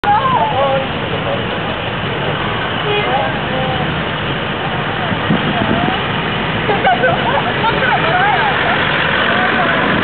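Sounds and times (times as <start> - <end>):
faint chattering voices: 0.0 - 10.0
vehicle engine running: 0.0 - 10.0.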